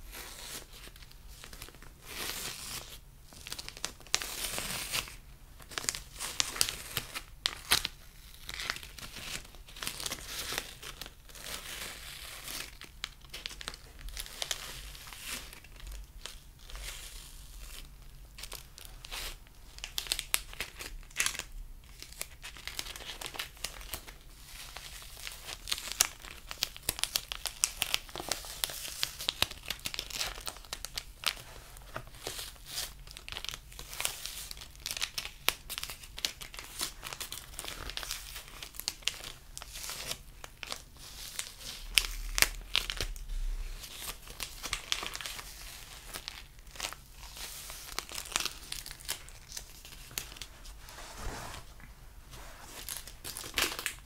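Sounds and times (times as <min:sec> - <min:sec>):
wrapper crumpling: 0:00.2 - 0:54.0.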